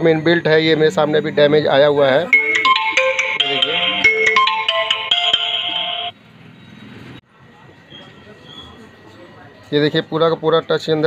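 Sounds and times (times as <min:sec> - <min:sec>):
mobile phone ringtone: 0:02.2 - 0:06.2.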